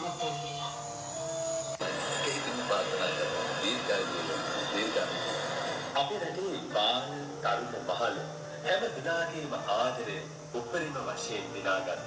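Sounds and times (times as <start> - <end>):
soft background music: 0.0 - 12.0
man speaking through speakers: 2.1 - 5.2.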